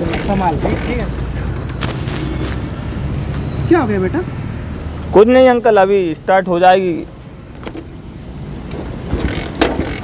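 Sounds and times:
motorcycle cranking clunks: 9.1 - 10.0.

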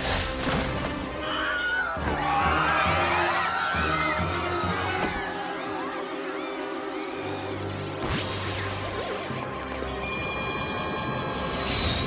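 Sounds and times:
ominous film score: 0.0 - 12.0.

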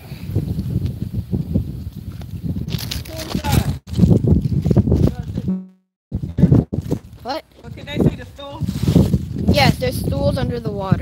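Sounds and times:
microphone noise: 2.6 - 7.0.

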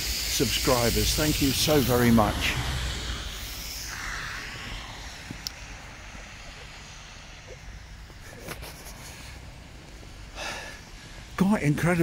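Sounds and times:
steady hiss: 0.0 - 12.0
low rumble: 0.6 - 8.4.

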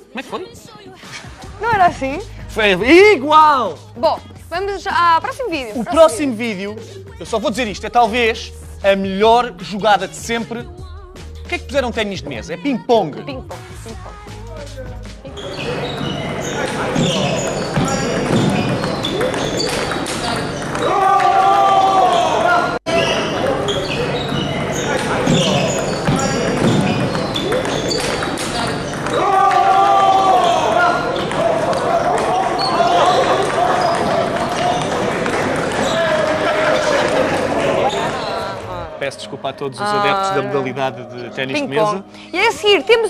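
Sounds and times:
voices calling out loudly: 15.3 - 39.2.

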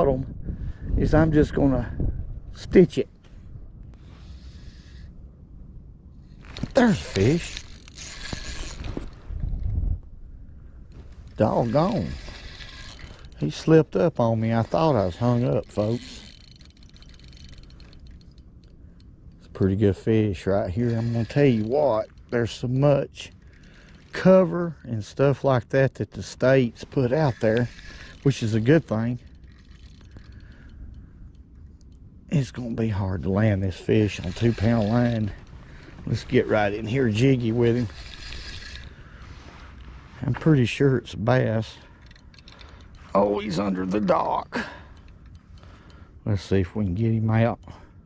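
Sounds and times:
wind rumble on microphone: 0.0 - 4.2, 7.2 - 13.2
fishing reel whirring: 6.6 - 9.2, 11.2 - 24.8, 27.0 - 32.0, 33.9 - 39.8, 41.9 - 46.2.

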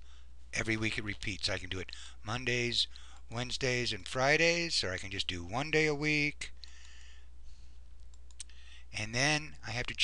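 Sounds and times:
computer mouse clicking: 8.0 - 8.5.

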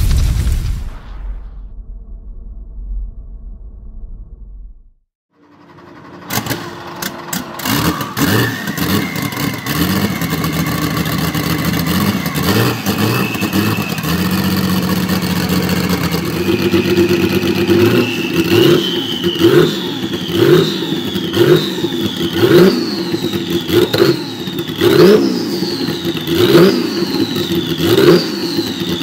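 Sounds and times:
engine bangs: 2.0 - 29.0
race car engine revving: 6.0 - 29.0.

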